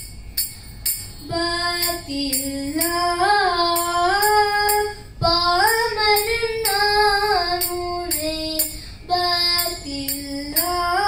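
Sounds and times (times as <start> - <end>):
girl singing into microphone: 1.2 - 11.0
short breath: 8.7 - 9.1.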